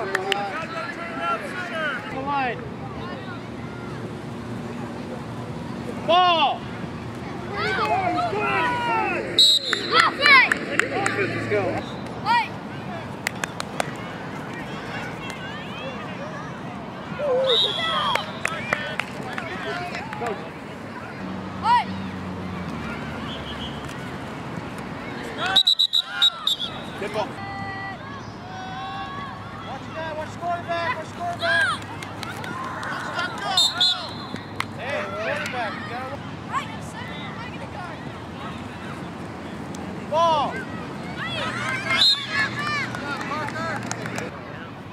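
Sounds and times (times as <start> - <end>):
faint background chatter: 0.0 - 44.9
people shouting and calling out: 5.9 - 23.9, 25.0 - 39.1, 39.9 - 44.9.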